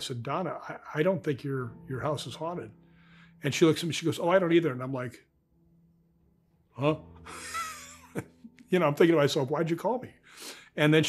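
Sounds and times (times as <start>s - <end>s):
breathy voiceless laugh: 7.3s - 8.3s.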